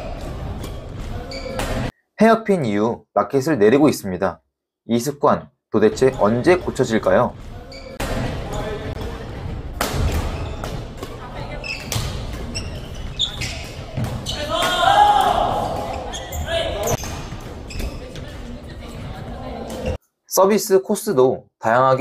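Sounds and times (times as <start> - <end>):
players' voices: 5.8 - 20.7
shoes on wooden court: 6.0 - 20.0
rackets hitting shuttlecocks: 9.7 - 16.1.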